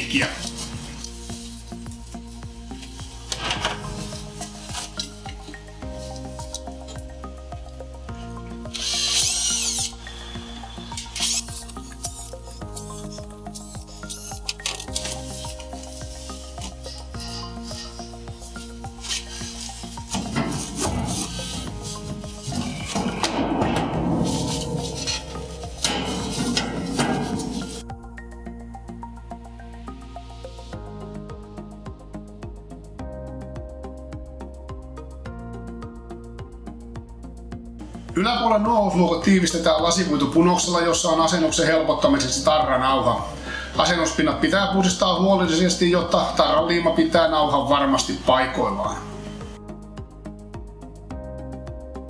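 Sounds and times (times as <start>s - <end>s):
slow held chords music: 0.0s - 38.2s, 48.9s - 52.0s
power drill boring holes: 8.7s - 12.0s.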